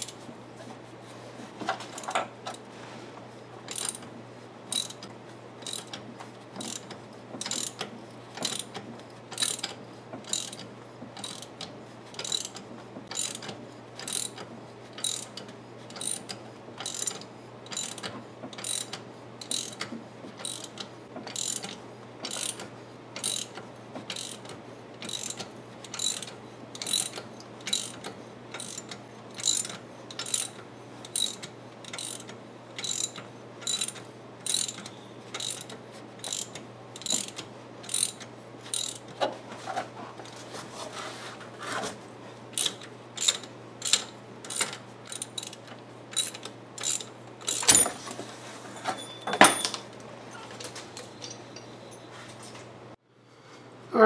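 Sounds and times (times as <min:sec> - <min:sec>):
ratchet wrench clicking: 0:03.7 - 0:04.1, 0:04.7 - 0:05.0, 0:05.6 - 0:06.0, 0:06.6 - 0:11.5, 0:12.2 - 0:39.1, 0:42.6 - 0:47.8.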